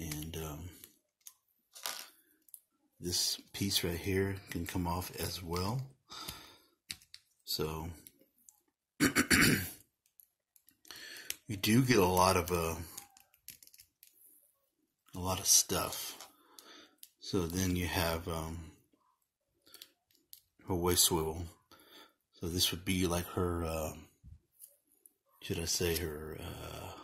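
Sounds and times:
small plastic parts clicking: 0:06.8 - 0:07.4, 0:09.8 - 0:11.5, 0:12.9 - 0:14.2.

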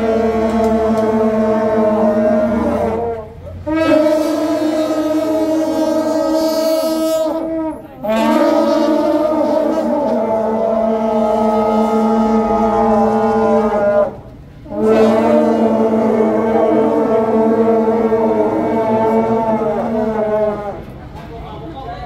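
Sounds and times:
brass horns blasting: 0:00.0 - 0:21.0.

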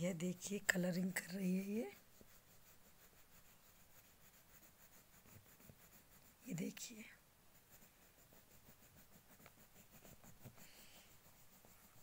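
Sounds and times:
crayon scratching on paper: 0:00.1 - 0:12.0.

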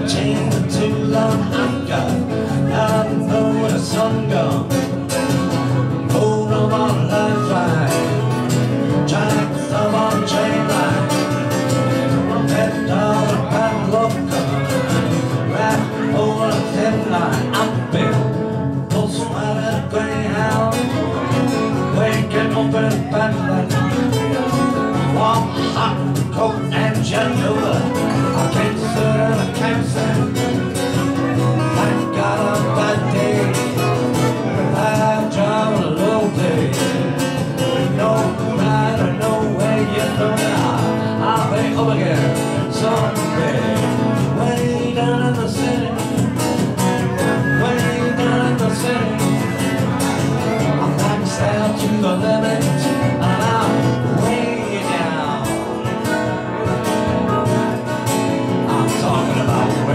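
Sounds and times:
person singing: 0:00.0 - 0:59.9
strummed acoustic guitar: 0:00.0 - 0:59.9
harmonica: 0:20.2 - 0:45.3, 0:45.9 - 0:51.6.

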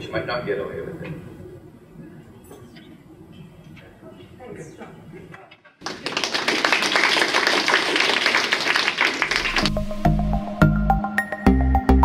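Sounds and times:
audience applauding: 0:05.8 - 0:09.7
music with deep bass beat: 0:09.7 - 0:12.0.

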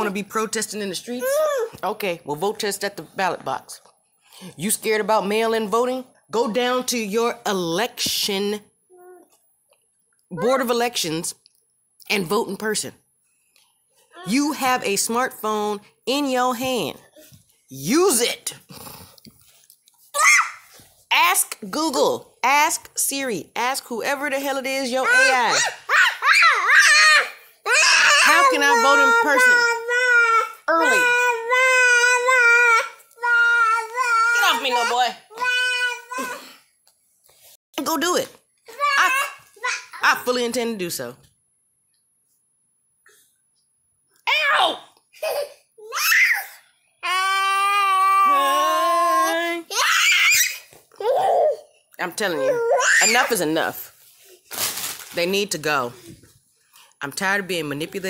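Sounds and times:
child squealing: 0:20.2 - 0:20.6, 0:25.1 - 0:36.4, 0:45.8 - 0:51.6, 0:52.3 - 0:53.2.

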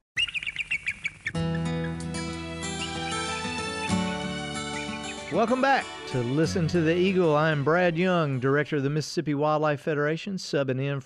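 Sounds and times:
eagle chittering chirps: 0:00.2 - 0:02.1, 0:02.7 - 0:03.4, 0:04.6 - 0:05.7
music with sustained chords: 0:01.3 - 0:08.9.

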